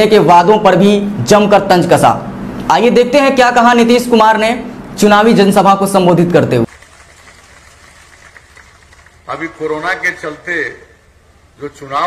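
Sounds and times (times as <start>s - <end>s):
faint low hum with hiss: 0.0s - 12.0s.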